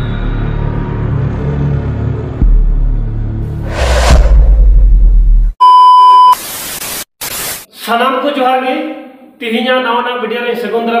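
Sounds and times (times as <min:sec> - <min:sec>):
deep bass drone: 0:00.8 - 0:05.6
heavy boom: 0:03.6 - 0:05.6.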